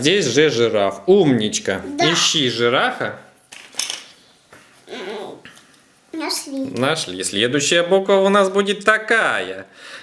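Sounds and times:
person speaking: 1.5s - 2.7s.

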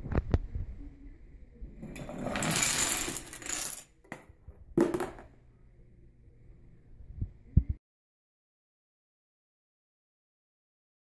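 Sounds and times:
marble clattering into plastic bin: 1.8s - 5.3s.

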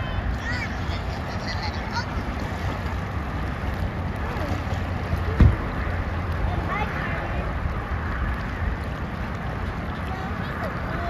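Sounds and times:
faint children's voices: 0.0s - 2.8s, 4.2s - 7.7s, 9.5s - 11.0s.

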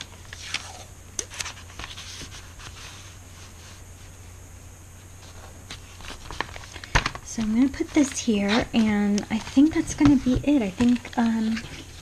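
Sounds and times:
paper rustling: 0.0s - 4.2s, 5.2s - 12.0s.

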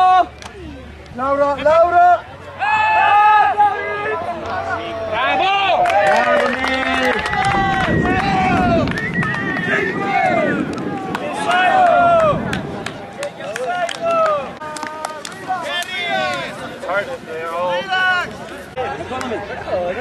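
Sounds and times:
players shouting: 0.0s - 18.6s.

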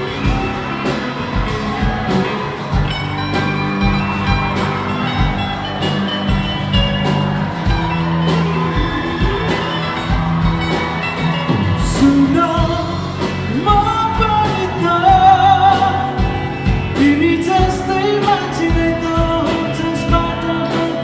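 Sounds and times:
live rock band playing: 0.0s - 21.0s
man singing lead: 11.7s - 21.0s.

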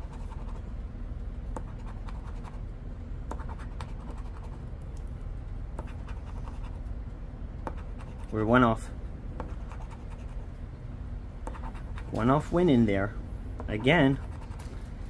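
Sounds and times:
low steady hum: 0.0s - 15.0s.

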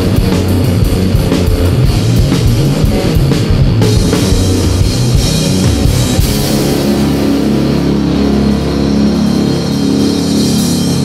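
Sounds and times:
heavy metal band playing: 0.0s - 11.0s.

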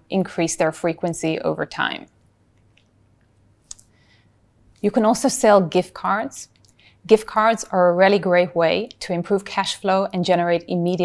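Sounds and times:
woman speaking: 0.0s - 2.2s, 4.8s - 11.0s.

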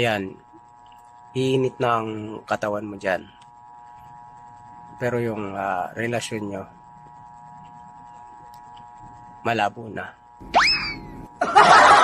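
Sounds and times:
comic pitch glide: 10.4s - 11.1s.

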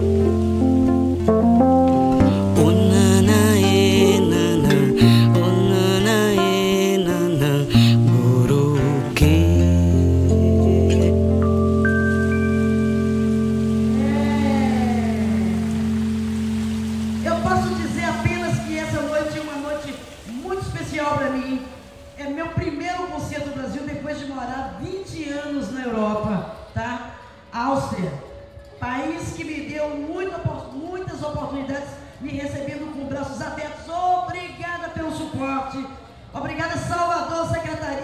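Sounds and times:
low bass note: 0.0s - 6.7s, 7.3s - 19.7s
band holding final chord: 0.0s - 20.4s
melody of held notes: 0.0s - 23.0s
acoustic guitar: 0.0s - 23.4s
crowd noise hiss: 0.0s - 31.1s
voice gliding: 2.2s - 11.5s, 13.9s - 20.4s
people talking: 2.4s - 11.2s, 14.0s - 15.7s, 17.2s - 28.2s.

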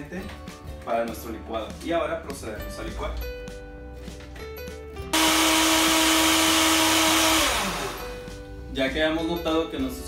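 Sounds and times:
blender motor spinning down: 5.2s - 8.3s
blender running: 5.2s - 8.3s.

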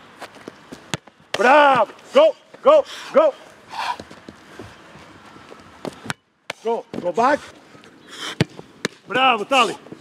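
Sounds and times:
man shouting: 1.4s - 3.4s
short breathy burst: 2.8s - 4.0s, 8.0s - 8.6s.

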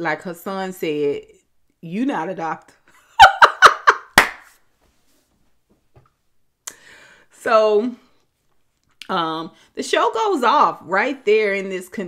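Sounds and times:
woman laughing: 3.0s - 4.2s.

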